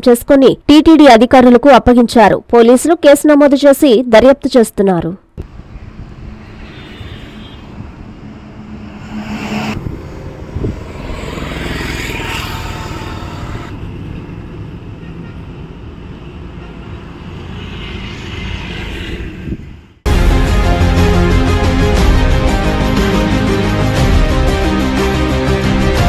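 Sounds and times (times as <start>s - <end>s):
wind: 5.2s - 20.1s
vehicle noise: 5.4s - 20.1s.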